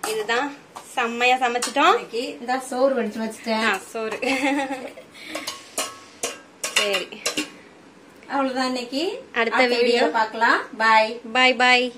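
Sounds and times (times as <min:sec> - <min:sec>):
metal pot lids clinking: 0:05.3 - 0:07.5.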